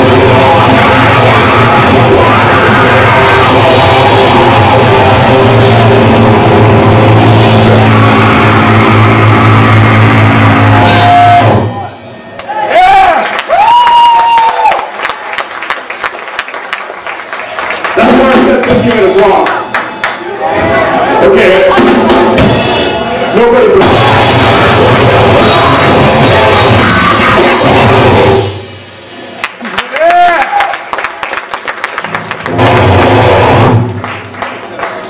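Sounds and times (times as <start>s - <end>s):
drum kit pounding: 0.0s - 11.9s, 21.6s - 29.0s, 32.0s - 34.3s
distorted guitar and bass chord: 0.0s - 12.3s, 21.0s - 29.2s, 32.4s - 34.1s.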